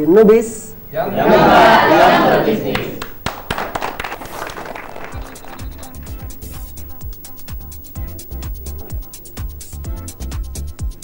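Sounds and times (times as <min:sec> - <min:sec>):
people clapping hands: 0:01.5 - 0:07.1.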